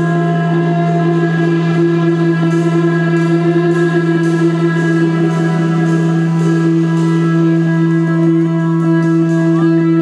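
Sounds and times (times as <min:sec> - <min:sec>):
electric guitar drone: 0:00.0 - 0:10.0.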